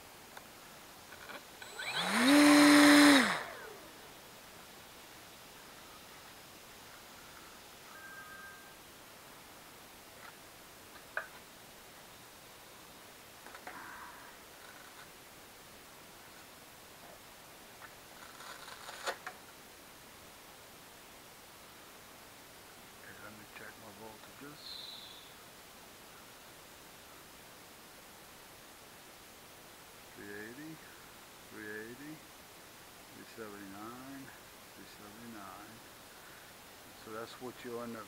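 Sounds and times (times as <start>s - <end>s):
camera hiss: 0.0s - 7.9s, 14.4s - 38.0s
model plane electric motor whine: 1.6s - 3.8s.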